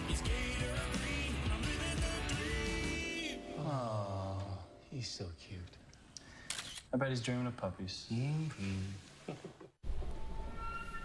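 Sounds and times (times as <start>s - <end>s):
man speaking softly: 7.0s - 9.1s.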